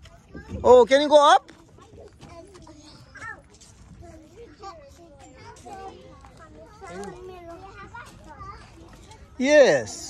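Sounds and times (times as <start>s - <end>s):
children playing and chattering: 0.0s - 10.0s.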